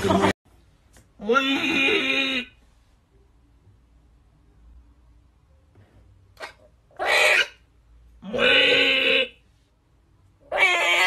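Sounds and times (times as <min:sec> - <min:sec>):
parrot screeching: 0:06.9 - 0:07.6, 0:10.5 - 0:11.0.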